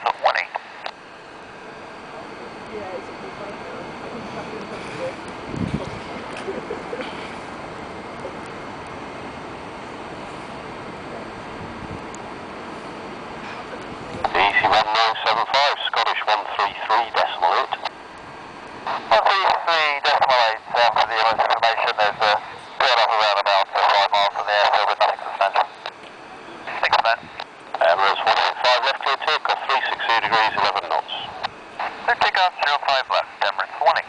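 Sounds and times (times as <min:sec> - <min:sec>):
tinny radio voice: 0:00.0 - 0:00.8, 0:13.6 - 0:17.9, 0:18.9 - 0:25.9, 0:26.5 - 0:34.0.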